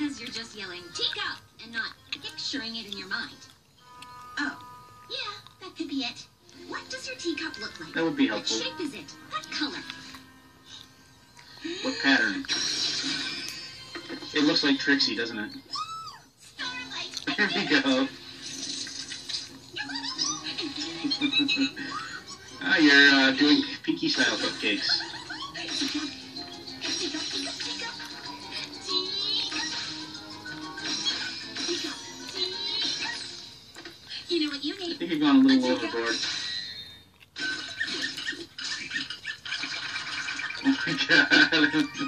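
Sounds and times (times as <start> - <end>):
cartoon music from television: 0.0 - 42.0.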